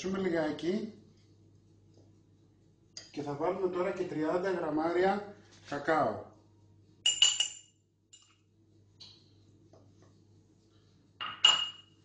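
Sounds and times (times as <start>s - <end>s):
spoon clinking against ceramic dishes: 7.0s - 8.3s, 11.2s - 11.9s.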